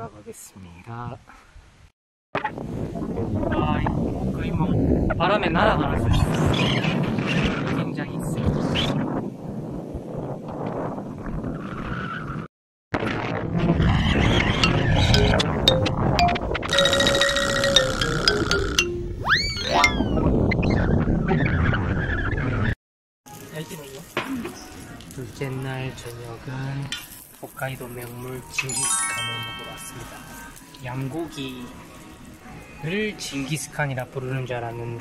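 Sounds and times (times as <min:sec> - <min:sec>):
wind buffeting microphone: 0:02.5 - 0:12.5
boing sound effect: 0:14.6 - 0:20.2
held tone: 0:14.6 - 0:20.2.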